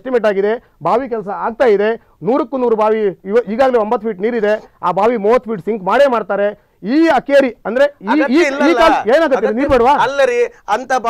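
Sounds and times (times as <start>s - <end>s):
person talking: 0.0s - 11.0s.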